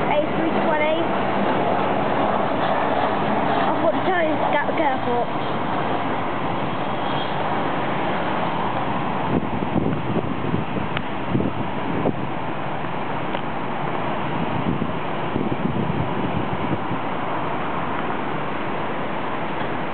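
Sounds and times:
jet engines rushing: 0.0s - 19.9s
wind buffeting microphone: 0.0s - 19.9s.

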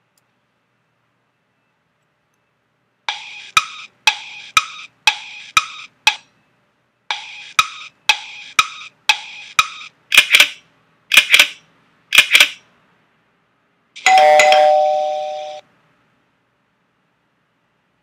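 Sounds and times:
clock ticking: 3.1s - 6.3s, 7.1s - 10.5s
bell ringing: 14.0s - 15.6s.

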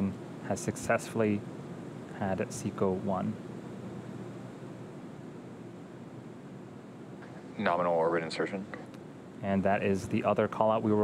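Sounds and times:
microphone hiss and hum: 0.0s - 11.0s.

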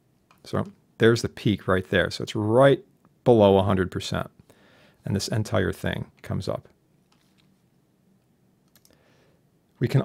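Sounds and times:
faint clicks: 8.6s - 9.0s.

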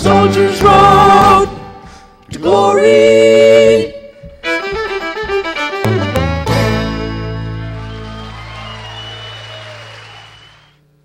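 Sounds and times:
audience applauding: 7.6s - 10.8s.

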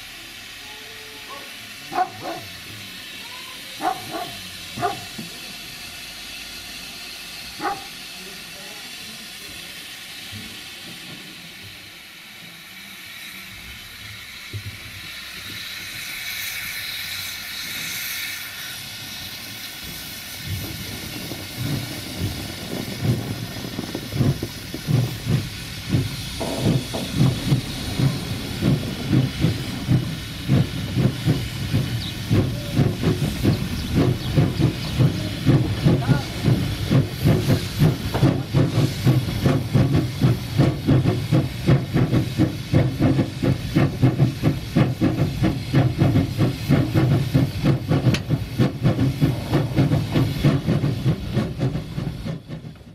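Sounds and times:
locomotive exhaust chuffs: 0.0s - 52.9s
steam locomotive hissing: 0.0s - 52.9s.

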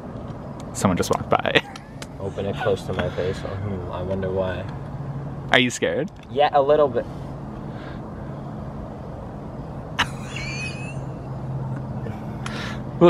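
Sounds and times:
low mechanical hum: 0.0s - 13.0s.

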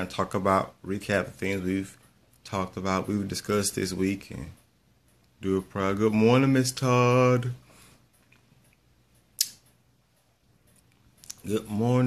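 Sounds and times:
sharp click with hissy tail: 9.3s - 9.8s.

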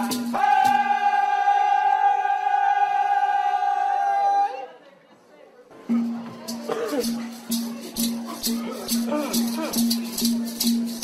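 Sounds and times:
singers holding a note: 0.0s - 4.7s
crowd chatter: 0.0s - 11.0s.

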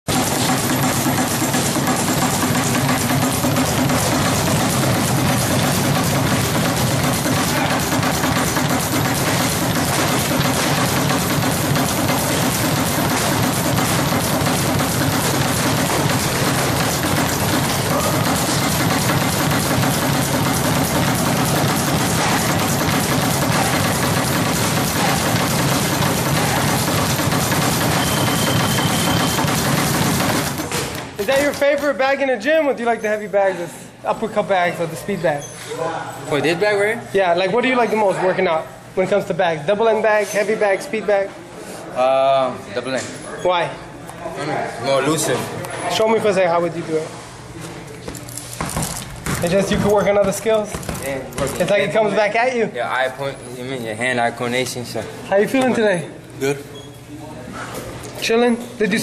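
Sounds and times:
speed bag rapid punching: 0.1s - 32.2s, 48.6s - 52.0s.

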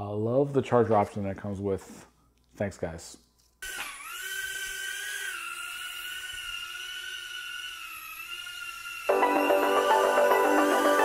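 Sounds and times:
drone motors whining: 3.7s - 11.0s.

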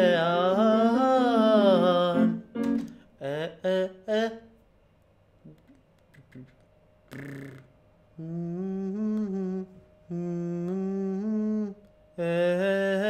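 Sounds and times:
man humming vocal exercise: 0.0s - 2.4s, 5.5s - 13.0s.

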